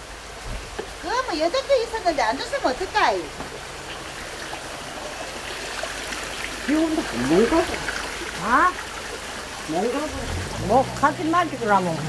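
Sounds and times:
rain falling: 0.0s - 12.0s.

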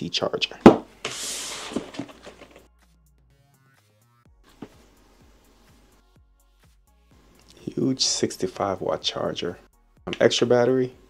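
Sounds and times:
faint background music: 0.0s - 2.8s, 3.4s - 11.0s.

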